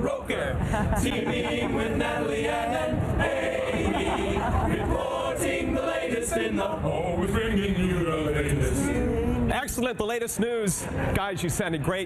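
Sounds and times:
male choir singing a jingle: 1.0s - 9.5s.

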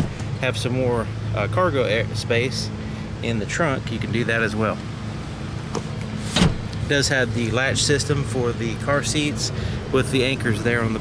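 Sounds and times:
seatback latch click: 5.7s - 6.8s.

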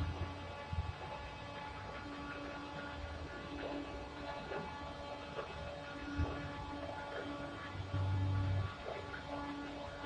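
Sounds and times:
deep drone: 0.0s - 10.0s.

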